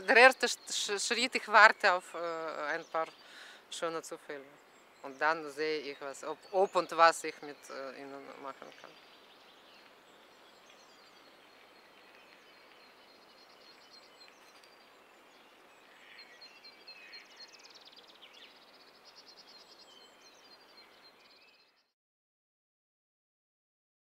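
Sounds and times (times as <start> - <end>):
small birds chirping: 0.0 - 21.9.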